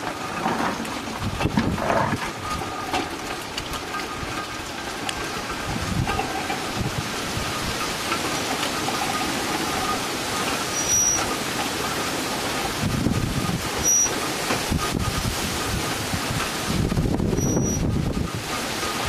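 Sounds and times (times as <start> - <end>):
hand-cranked depulper rattling: 0.0 - 19.0.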